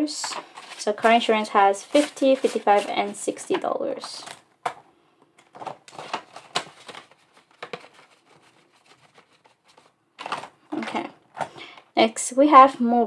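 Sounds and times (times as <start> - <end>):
paper rustling: 0.2 - 4.8, 5.4 - 11.6.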